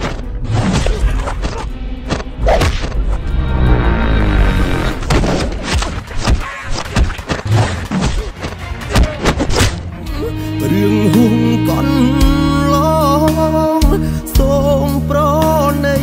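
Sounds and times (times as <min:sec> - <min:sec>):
music with steady bass: 0:09.8 - 0:16.0.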